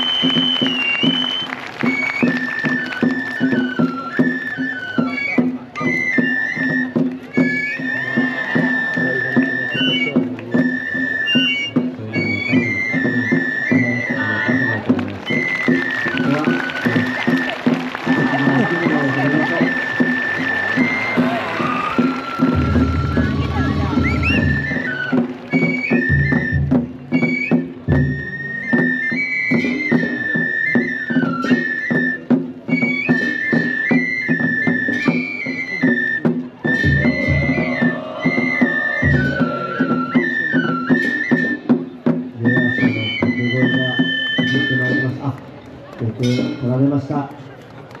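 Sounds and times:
high bamboo flute melody: 0.0 - 46.8
low irregular drum beats: 11.7 - 28.9, 34.4 - 43.5.

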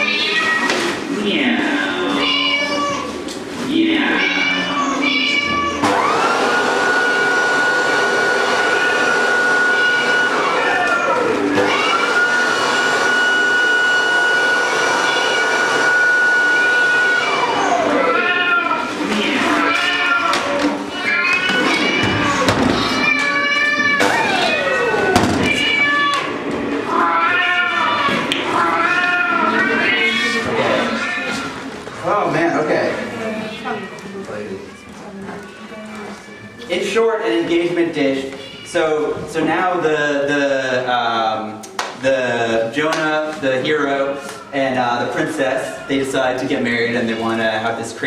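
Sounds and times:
electronic meow-like wavering calls: 4.2 - 5.9, 8.7 - 12.1, 15.0 - 15.7, 16.6 - 26.3, 26.9 - 31.4.

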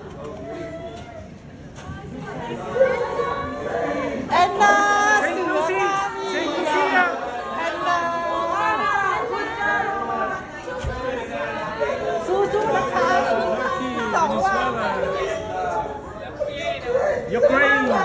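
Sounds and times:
people chattering and calling out: 0.0 - 18.0.

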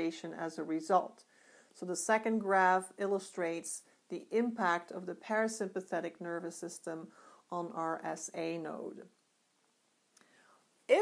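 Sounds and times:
woman speaking: 0.0 - 1.2, 1.8 - 9.2
soft breath: 1.2 - 1.8, 7.1 - 7.5, 10.2 - 10.8.

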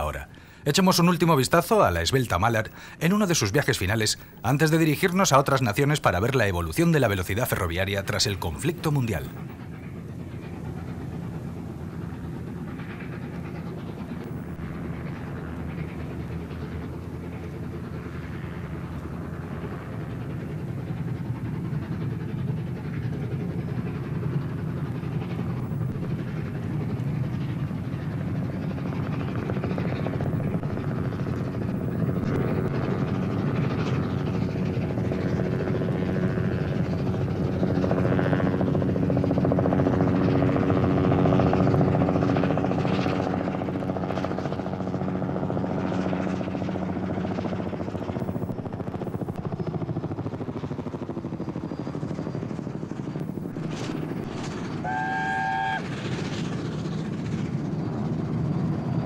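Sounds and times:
steam locomotive chuffing: 6.6 - 35.4, 52.7 - 58.8.

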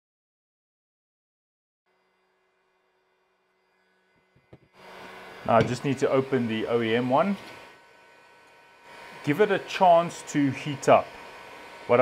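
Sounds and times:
heat gun blowing: 3.0 - 12.0.

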